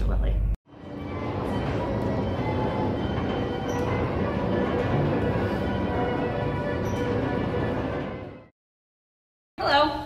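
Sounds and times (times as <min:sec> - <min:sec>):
faint carousel music: 0:00.7 - 0:08.5
carousel mechanical rumble: 0:00.8 - 0:08.5.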